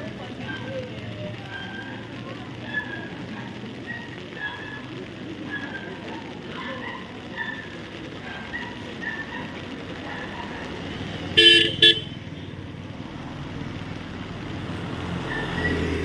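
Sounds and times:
car passing on wet road: 0.0 - 16.0
motor scooter engine rumble: 0.0 - 16.0
traffic noise: 0.0 - 16.0
car horn toot: 11.4 - 12.5.

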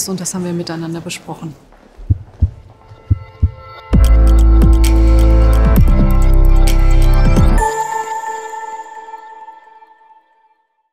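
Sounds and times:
heartbeat thumps: 1.8 - 4.9.

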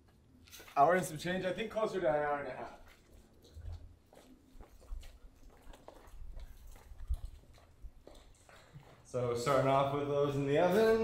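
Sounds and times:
footsteps of people walking: 2.6 - 11.0.

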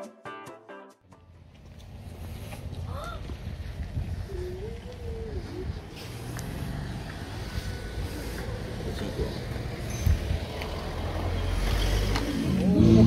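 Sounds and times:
music: 0.0 - 1.4
low engine rumble: 1.2 - 13.0
faint voices: 4.0 - 6.6.

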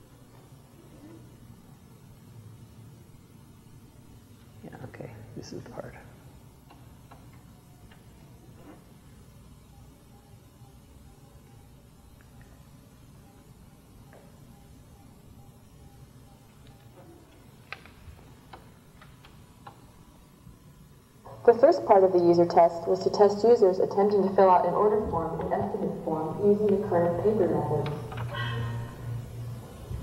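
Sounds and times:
faint irregular clicks: 6.6 - 8.1, 11.4 - 12.6, 16.5 - 19.8.

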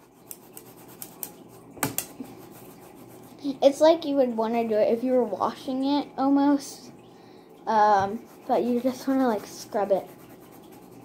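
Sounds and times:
sponge scrubbing a plate: 0.0 - 3.6, 7.8 - 11.0.

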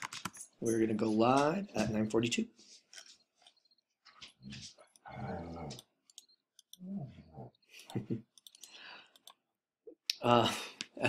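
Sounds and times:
computer mouse clicks: 5.7 - 6.8, 7.8 - 9.4.

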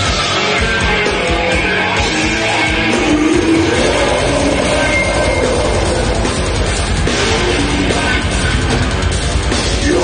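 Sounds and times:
death metal band playing live: 0.0 - 10.0.

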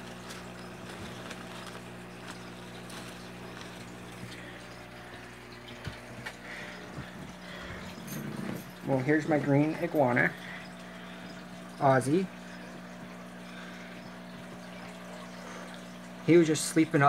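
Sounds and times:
leaves rustling: 0.0 - 5.2
water trickling: 0.0 - 17.0
low hum: 0.5 - 15.8.

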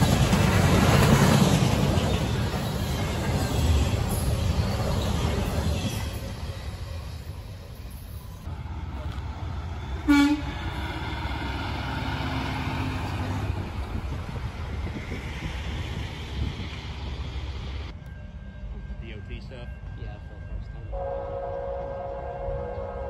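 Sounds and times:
passing freight train rumble: 0.0 - 23.0
truck horn toot: 10.0 - 10.6.

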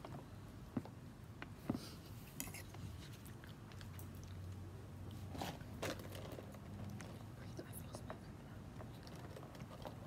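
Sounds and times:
faint whispered speech: 7.3 - 8.6.

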